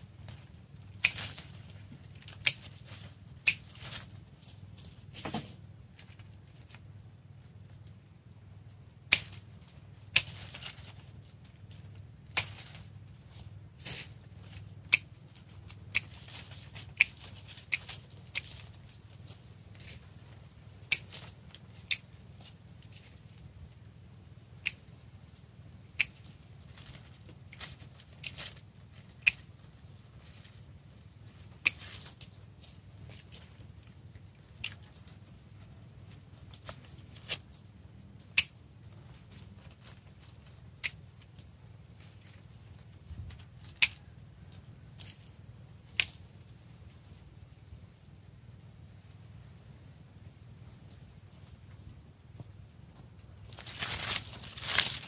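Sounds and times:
pruning shears snipping branches: 0.9s - 4.2s, 9.1s - 11.1s, 12.3s - 13.0s, 13.8s - 18.9s, 20.8s - 22.2s, 26.0s - 26.3s, 27.5s - 29.5s, 31.4s - 33.3s, 38.2s - 38.6s.

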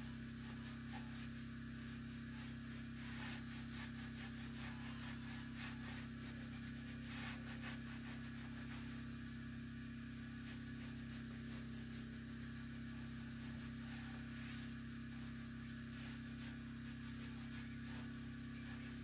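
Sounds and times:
hand scrubber scrubbing stove: 0.0s - 9.2s, 10.3s - 19.0s.

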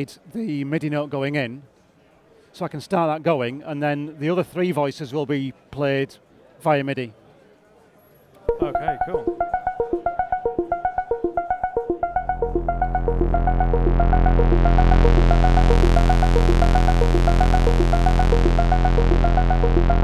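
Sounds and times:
fast run of short synth notes: 8.5s - 20.0s
held low synth notes: 8.5s - 20.0s.

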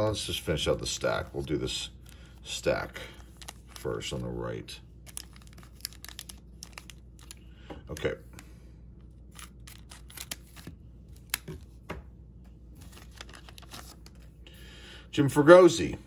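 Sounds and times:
plastic wrapper crinkling: 1.4s - 4.4s, 5.0s - 8.0s, 9.2s - 11.7s, 12.8s - 14.3s.

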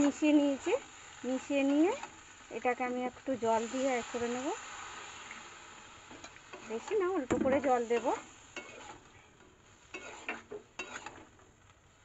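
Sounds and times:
soft sizzle: 0.0s - 12.0s
spatula scraping pan: 6.1s - 11.4s.

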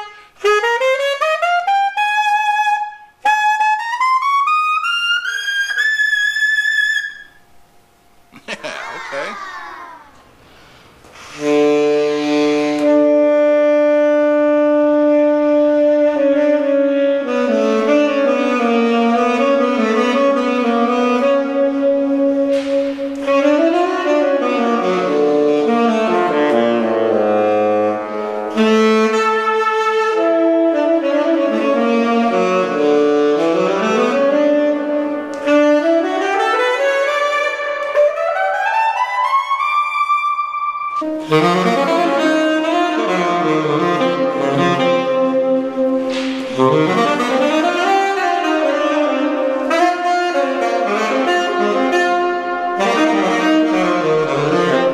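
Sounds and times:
tenor saxophone playing: 0.0s - 7.5s, 11.1s - 54.9s.

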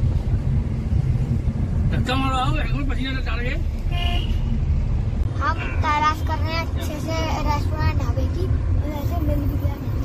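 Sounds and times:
car cabin road rumble: 0.0s - 10.0s.

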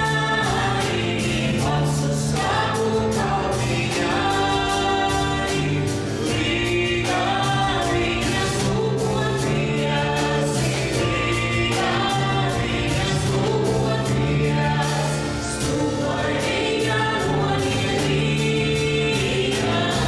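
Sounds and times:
choir singing folk dance music: 0.0s - 20.0s.

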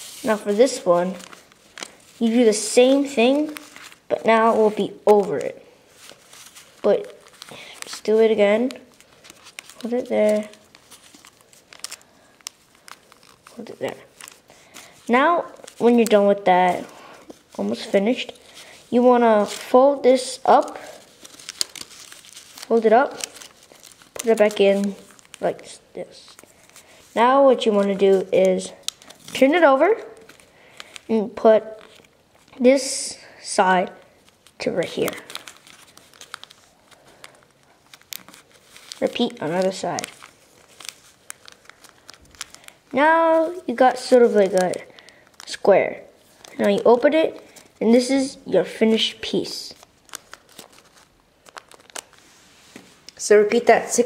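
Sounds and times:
paper crinkling and crackling: 0.0s - 32.7s, 33.7s - 48.1s, 48.8s - 54.0s.

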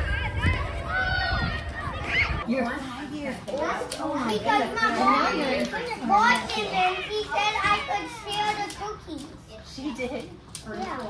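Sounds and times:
children shouting: 0.0s - 2.4s, 4.6s - 9.0s
steady low rumble: 0.0s - 2.4s.

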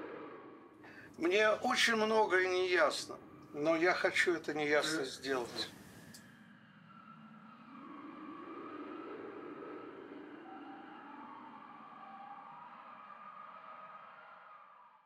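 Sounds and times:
low hum: 0.0s - 12.6s
wavering tonal drone: 0.0s - 14.6s.

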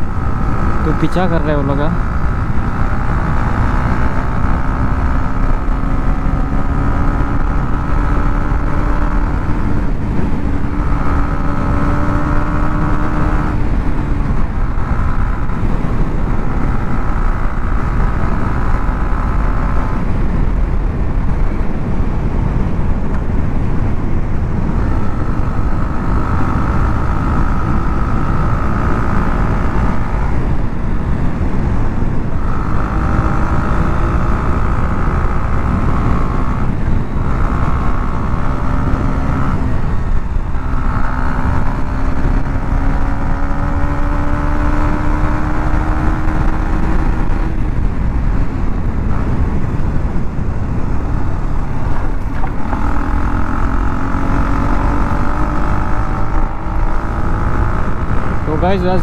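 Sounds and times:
motorcycle engine: 0.0s - 59.0s
wind rush on microphone: 0.0s - 59.0s.

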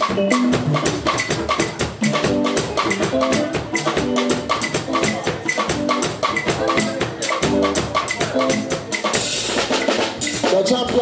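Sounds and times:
drums keeping steady beat: 0.0s - 11.0s
guitar-like melodic figure: 0.0s - 11.0s.

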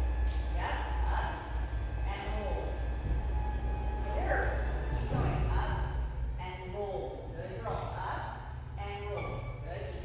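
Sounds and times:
electric fan humming: 0.0s - 10.0s.

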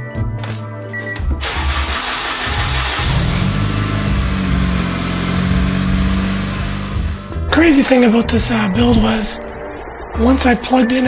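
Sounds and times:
car engine cranking and starting: 1.4s - 7.4s
car engine running: 1.4s - 7.4s.

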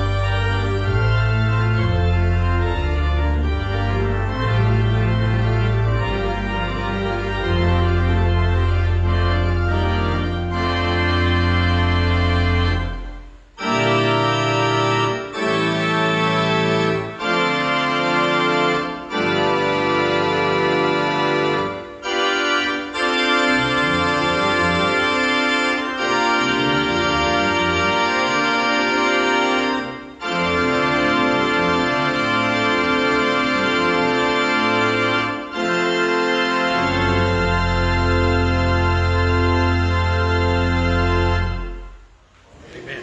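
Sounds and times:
pipe organ chords: 0.0s - 42.3s
deep organ pedal bass: 0.0s - 43.0s.

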